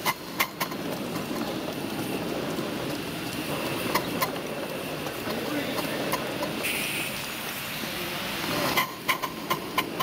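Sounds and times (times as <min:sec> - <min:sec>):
miniature steam locomotive running: 0:00.0 - 0:10.0
wheels clicking over rail joints: 0:00.0 - 0:10.0.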